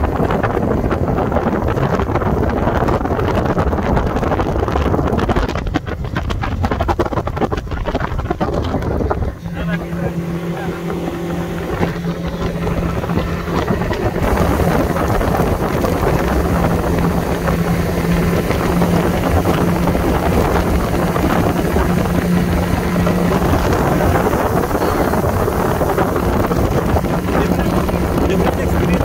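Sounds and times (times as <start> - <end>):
outboard motor humming: 0.0 - 29.0
water rushing past hull: 0.0 - 29.0
wind buffeting microphone: 0.0 - 29.0.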